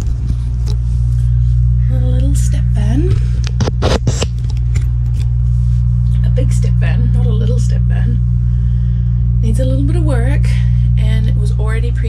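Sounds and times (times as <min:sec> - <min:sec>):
microphone handling noise: 0:00.0 - 0:01.8, 0:03.0 - 0:06.3
low mechanical hum: 0:00.0 - 0:12.0.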